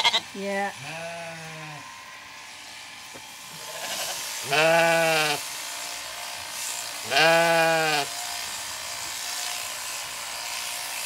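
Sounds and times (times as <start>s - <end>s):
sheep bleating: 0.0s - 2.1s, 3.6s - 5.5s, 7.0s - 8.2s
electric clippers buzzing: 0.0s - 11.0s.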